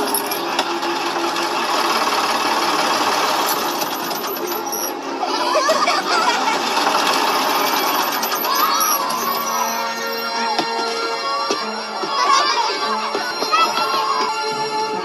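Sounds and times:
truck engine rattling: 0:00.0 - 0:11.2.

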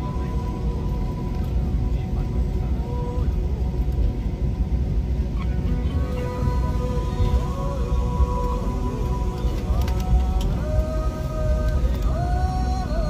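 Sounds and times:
airliner engines rumbling in cabin: 0:00.0 - 0:13.0.

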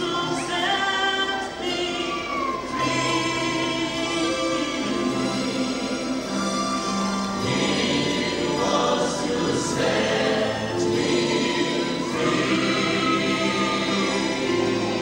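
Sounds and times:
gospel group singing: 0:00.0 - 0:15.0.

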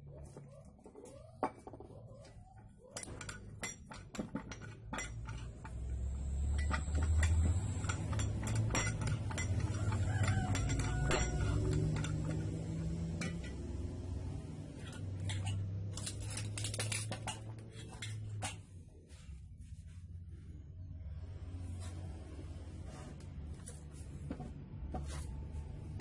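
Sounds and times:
metal parts clinking together: 0:03.0 - 0:13.7, 0:14.8 - 0:18.2.

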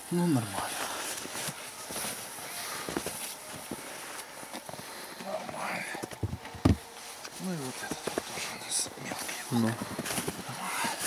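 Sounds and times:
footsteps in snow: 0:00.3 - 0:05.9, 0:06.8 - 0:11.0
light knocks on wood: 0:06.1 - 0:06.9.

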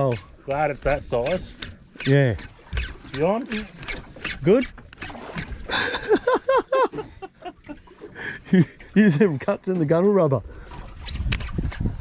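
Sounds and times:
man laughing: 0:05.7 - 0:09.4.

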